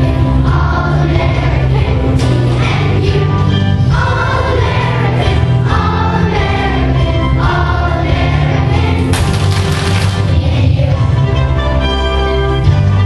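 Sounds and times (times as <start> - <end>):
children's choir singing: 0.0 - 11.8
musical accompaniment: 0.0 - 13.0.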